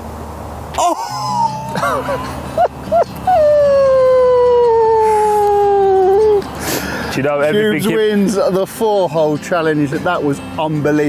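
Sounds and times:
man howling a cheer: 0.8s - 1.8s, 3.3s - 6.3s.

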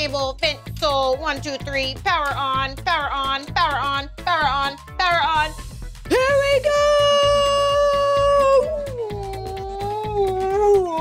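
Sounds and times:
upbeat children's music: 0.0s - 11.0s.

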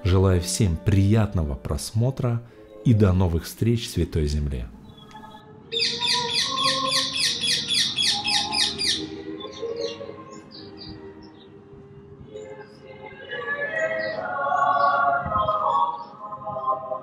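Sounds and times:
faint choral singing: 0.0s - 17.0s
songbird trilling and chirping: 4.8s - 11.4s.

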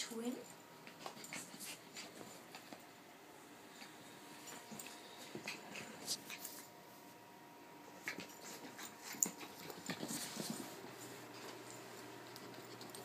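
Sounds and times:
puppy scuffling: 0.4s - 3.0s, 3.7s - 7.2s, 7.9s - 13.0s.

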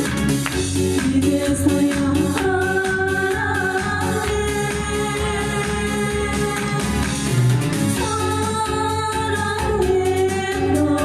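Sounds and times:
instrumental accompaniment: 0.0s - 11.0s
woman singing into microphone: 0.8s - 7.3s, 8.0s - 11.0s.

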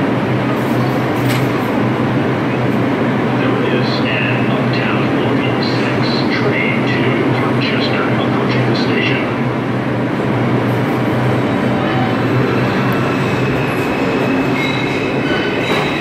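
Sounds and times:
subway train humming: 0.0s - 16.0s.

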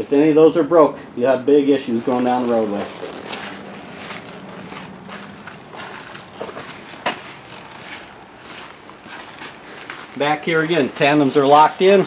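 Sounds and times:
footsteps on wet gravel: 1.9s - 12.0s.

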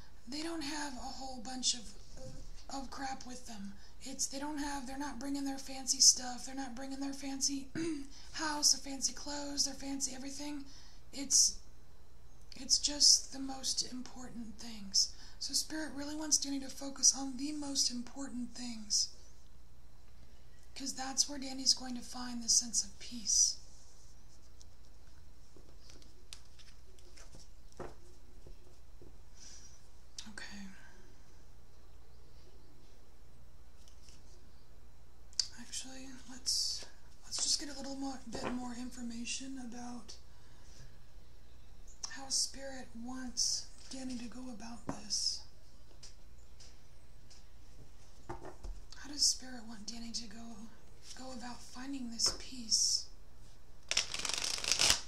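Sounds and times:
cards being shuffled: 24.3s - 28.9s, 33.8s - 34.4s, 53.9s - 55.0s
woman whispering softly: 30.2s - 31.0s
card deck snapping square: 53.9s - 55.0s.

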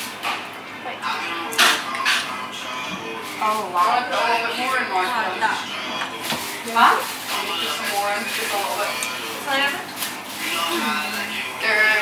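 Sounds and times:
women talking: 3.4s - 5.8s, 6.6s - 9.9s, 10.7s - 12.0s.

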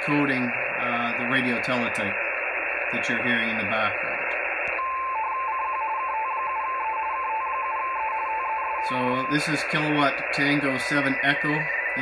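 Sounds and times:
radio band noise hiss: 0.0s - 12.0s.

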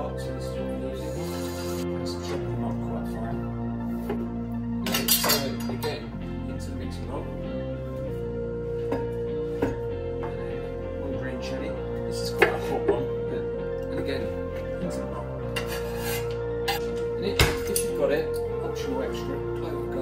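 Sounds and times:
soft background music: 0.0s - 20.0s.

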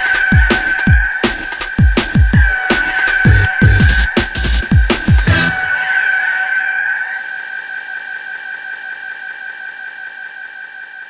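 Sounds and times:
high electronic tone: 0.0s - 11.0s.

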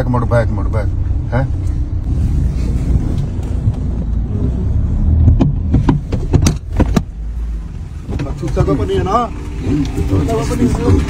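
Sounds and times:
car road and engine rumble: 0.0s - 11.0s
sharp knocks and clicks: 5.2s - 7.2s.

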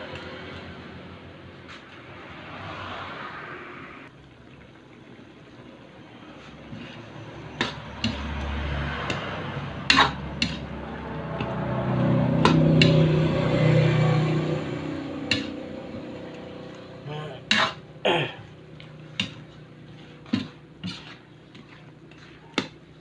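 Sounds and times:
metal ladle scraping a wok: 6.4s - 17.9s, 19.0s - 22.6s.

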